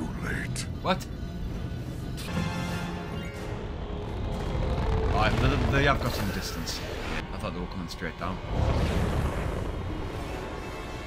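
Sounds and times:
music: 0:00.0 - 0:11.0
low explosion rumble: 0:08.4 - 0:10.2.

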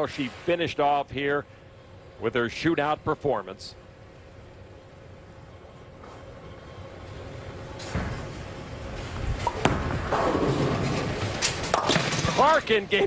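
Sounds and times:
bowling ball rolling rumble: 0:06.0 - 0:12.7.

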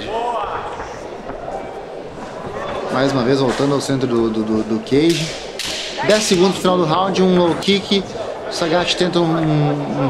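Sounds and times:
people shouting: 0:00.0 - 0:01.0.

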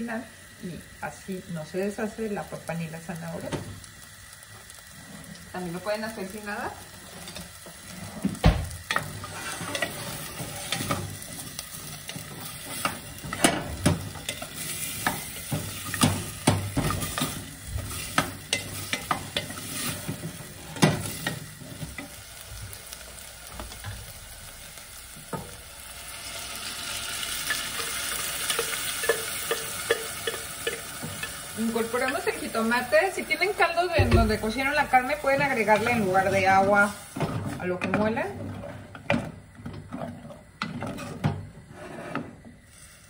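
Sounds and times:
vegetables sizzling in saucepan: 0:00.0 - 0:43.0.

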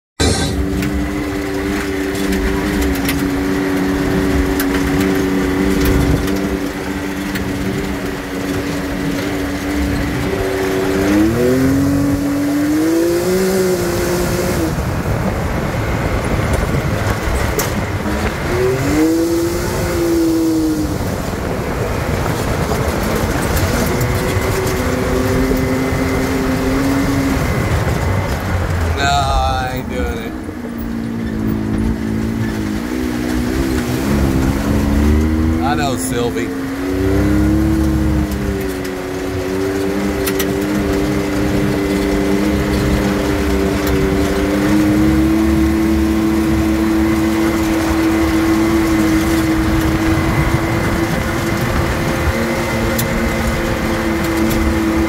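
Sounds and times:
tyres rumbling on dirt trail: 0:00.2 - 0:55.0
utility vehicle engine running: 0:00.2 - 0:55.0.

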